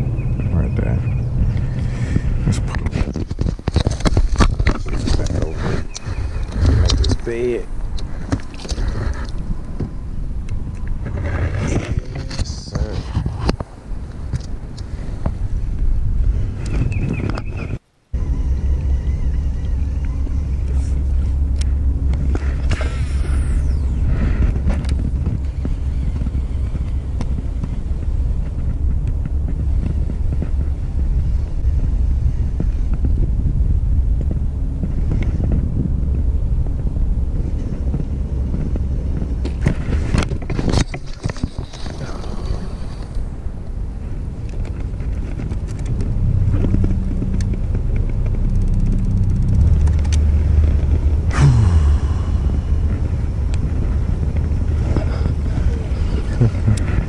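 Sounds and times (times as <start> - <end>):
steady low rumble: 0.0 - 57.0.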